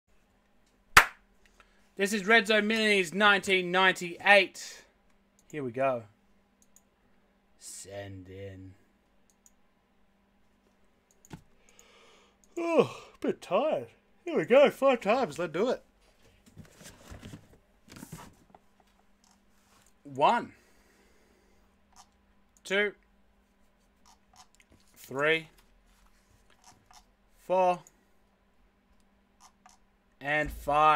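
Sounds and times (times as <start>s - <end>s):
sharp hand smack: 1.0s - 1.2s
soft computer mouse clicks: 6.6s - 6.9s, 9.2s - 9.6s, 11.0s - 12.6s
rustling and handling noises: 15.9s - 20.0s, 23.4s - 27.1s.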